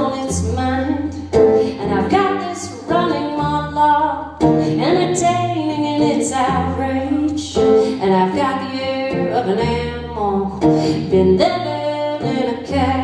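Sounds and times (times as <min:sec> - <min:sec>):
strummed acoustic guitar: 0:00.0 - 0:13.0
woman singing: 0:00.0 - 0:13.0.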